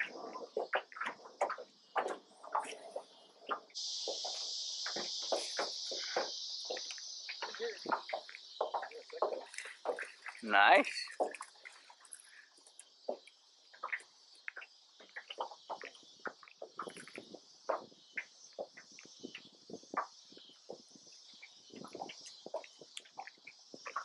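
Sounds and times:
faint high-pitched hiss: 0.0 - 24.0.

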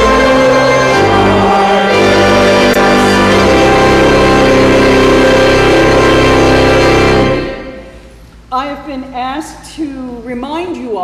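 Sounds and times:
hymn singing: 0.0 - 8.1
organ chord: 0.0 - 8.1.

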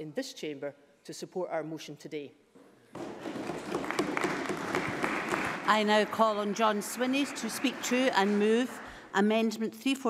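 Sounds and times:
crowd applause: 3.2 - 9.0.

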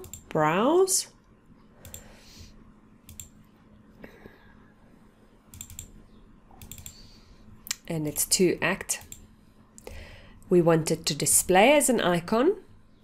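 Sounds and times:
computer mouse clicking: 0.0 - 0.3, 1.8 - 2.1, 3.1 - 3.4, 5.5 - 6.0, 6.6 - 7.1, 9.0 - 9.3
faint steady hum: 0.0 - 13.0.

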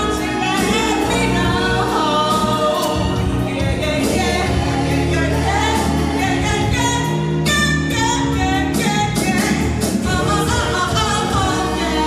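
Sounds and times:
bass line: 0.0 - 12.0
woman singing: 0.0 - 12.0.

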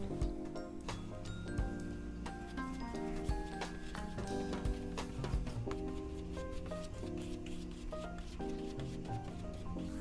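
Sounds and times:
background music of held notes: 0.0 - 10.0
paintbrush scratching on canvas: 2.4 - 10.0.

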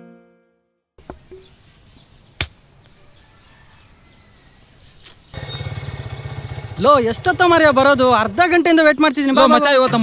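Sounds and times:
faint outdoor background: 0.0 - 10.0
motorcycle engine running: 5.3 - 8.5.

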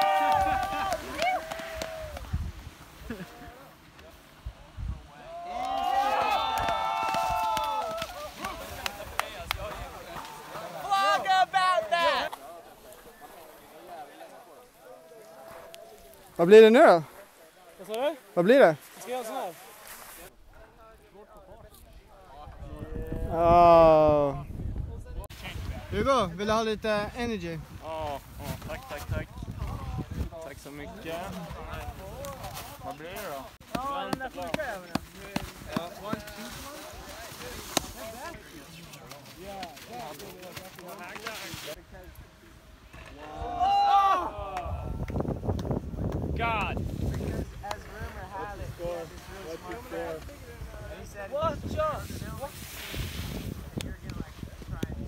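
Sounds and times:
people calling and chattering: 0.0 - 55.0
wind rumble on microphone: 1.6 - 2.9, 4.4 - 5.1, 22.3 - 32.8, 44.6 - 55.0.

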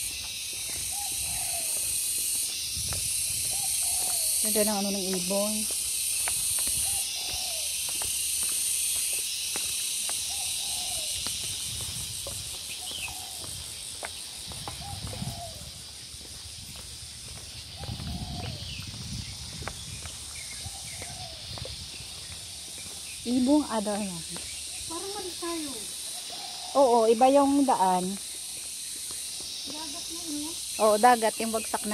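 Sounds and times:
footsteps on paved path: 0.0 - 31.9
insect chorus: 0.0 - 31.9
bird calling: 0.6 - 2.3, 3.4 - 8.0, 10.1 - 11.3, 12.6 - 15.7, 20.3 - 22.3, 23.0 - 27.9.

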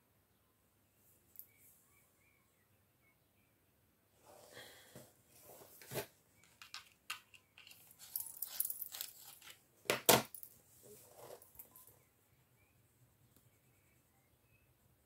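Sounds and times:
soft paper rustle: 5.4 - 9.6
wooden pencils clicking and clattering: 6.4 - 10.5.

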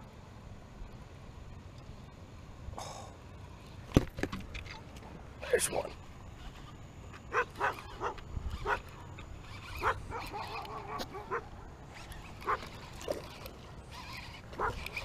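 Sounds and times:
dog barking: 9.8 - 11.4.

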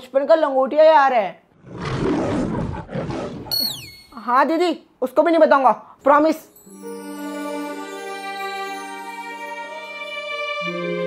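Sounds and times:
whistle tone sliding down: 3.5 - 4.2.

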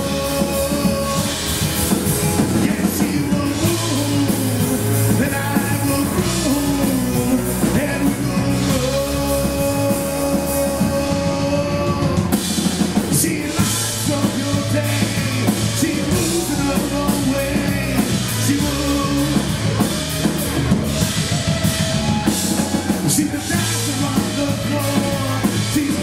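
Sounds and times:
rock band playing: 0.0 - 26.0.

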